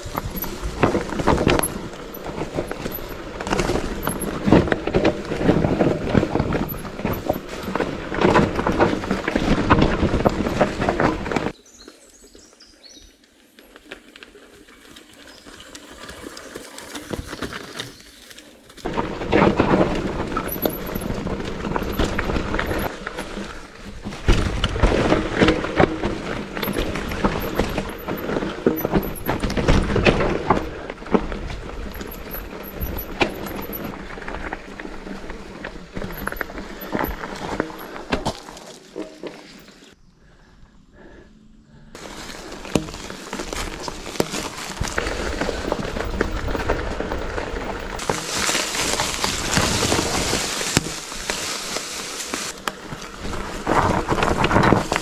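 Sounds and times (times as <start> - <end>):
wind on handlebars: 0.0 - 11.6, 18.8 - 40.0, 42.0 - 55.0
bike tyres rattling on rocky trail: 0.0 - 40.0, 42.0 - 55.0
bike passing on trail: 0.0 - 55.0.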